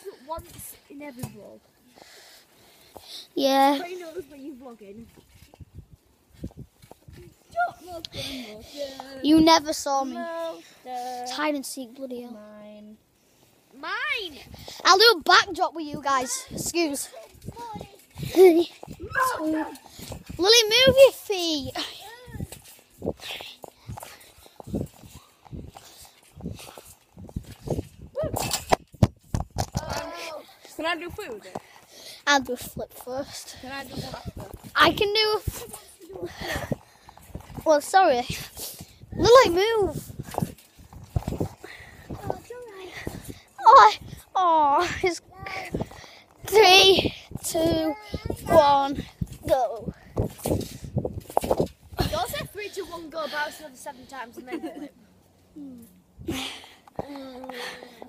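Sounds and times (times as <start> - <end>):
child's high voice: 7.2 - 12.8, 13.8 - 22.6, 28.1 - 28.5, 29.7 - 31.5, 32.2 - 36.8, 39.2 - 40.0, 42.1 - 50.0, 52.0 - 54.8
trampoline thuds and rustles: 15.9 - 31.5, 33.6 - 53.4.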